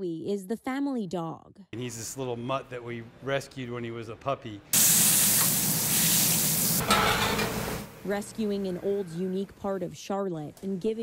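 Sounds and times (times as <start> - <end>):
meat patties sizzling on griddle: 4.8 - 6.8.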